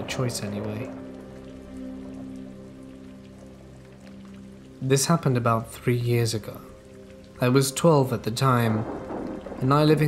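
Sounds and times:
soft background music: 0:00.0 - 0:10.0
steady rain falling: 0:00.0 - 0:10.0.

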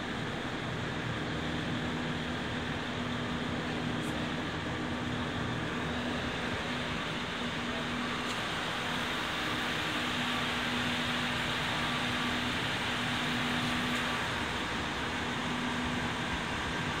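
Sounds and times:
diesel railcar idling: 0:00.0 - 0:17.0.

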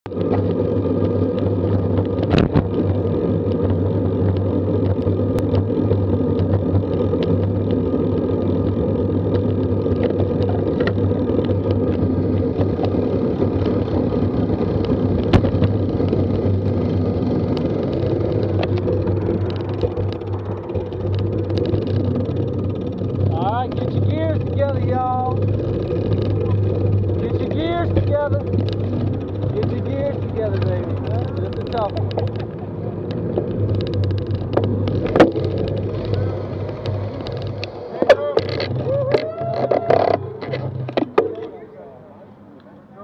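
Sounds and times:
wind and road rumble: 0:00.0 - 0:43.0
sharp knocks from road bumps: 0:01.2 - 0:03.0, 0:09.3 - 0:41.6.

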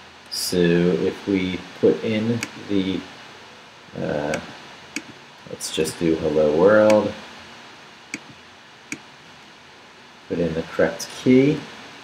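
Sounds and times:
low room noise: 0:00.0 - 0:12.0
computer clicks: 0:04.3 - 0:05.2, 0:08.1 - 0:09.0.

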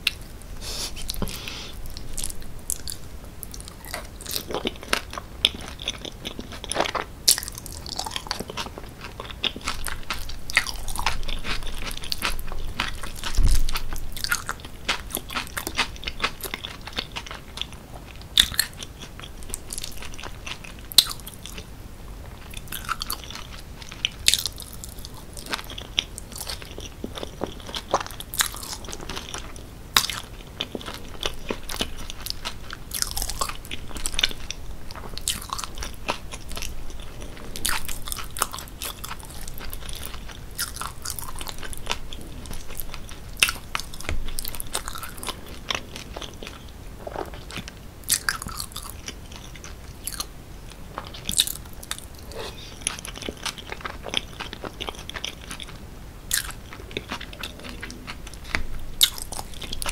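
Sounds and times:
chewing with wet mouth clicks: 0:01.1 - 0:21.7, 0:22.4 - 0:59.9.

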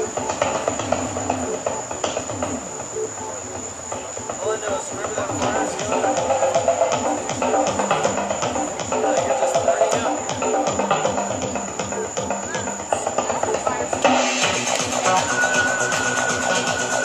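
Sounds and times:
electronic dance music: 0:00.0 - 0:17.0.

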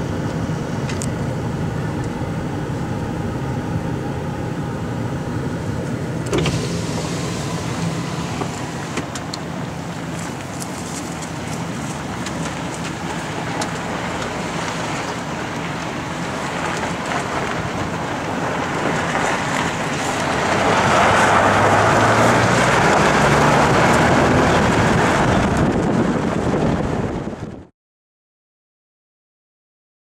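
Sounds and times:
truck engine humming: 0:00.0 - 0:27.6
tyres rolling on gravel: 0:06.4 - 0:26.1.

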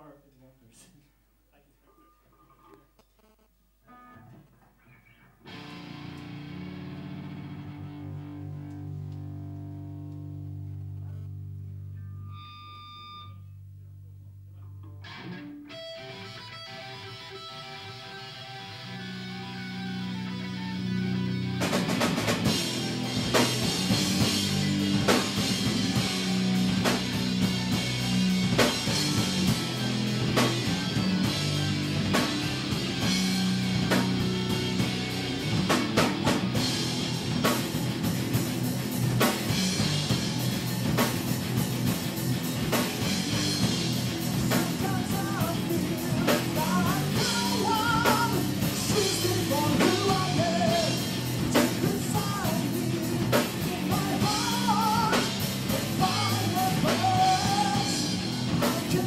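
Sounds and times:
electric guitar line: 0:03.8 - 0:59.0
live rock band: 0:03.9 - 0:13.4, 0:14.8 - 0:59.0
drum kit: 0:05.5 - 0:11.8, 0:17.3 - 0:59.0.

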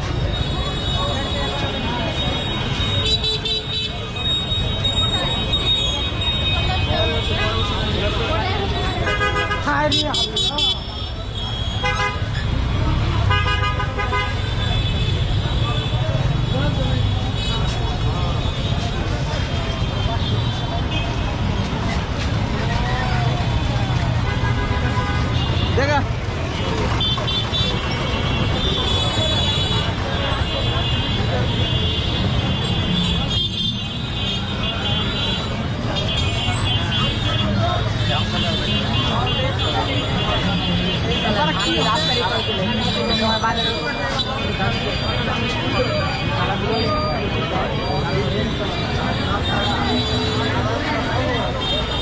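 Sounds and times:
many people talking: 0:00.0 - 0:52.0
rumble of engines: 0:00.0 - 0:52.0
vehicle horns honking: 0:09.0 - 0:12.4, 0:13.2 - 0:16.0, 0:26.6 - 0:37.6.

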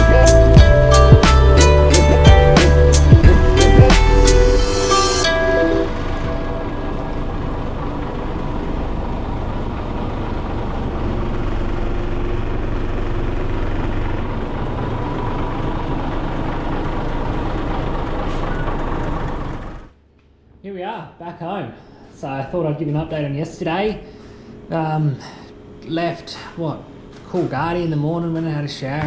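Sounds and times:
background music: 0:00.0 - 0:08.3
bus diesel engine running: 0:00.0 - 0:20.0, 0:22.8 - 0:29.0.

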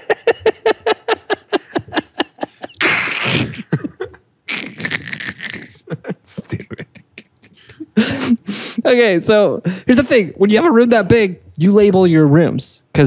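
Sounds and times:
men laughing: 0:00.0 - 0:08.8.

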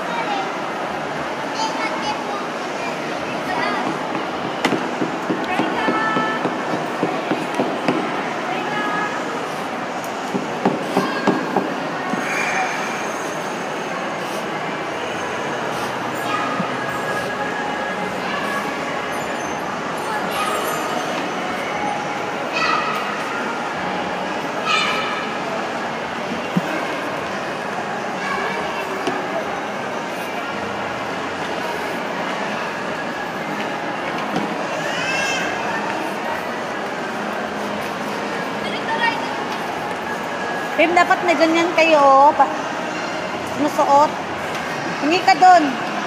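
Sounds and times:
indoor play area hubbub: 0:00.0 - 0:46.0.

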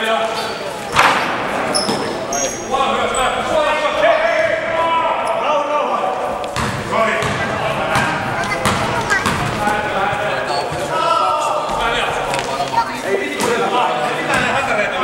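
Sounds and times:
sneaker squeaks: 0:00.3 - 0:03.5, 0:06.5 - 0:11.0
basketball thudding on court: 0:06.5 - 0:09.6.

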